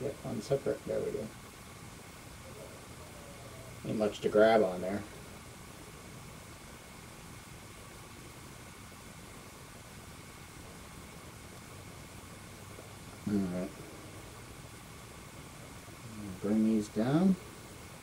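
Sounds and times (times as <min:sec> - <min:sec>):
faint hum: 0:00.0 - 0:18.0
room tone hiss: 0:00.0 - 0:18.0.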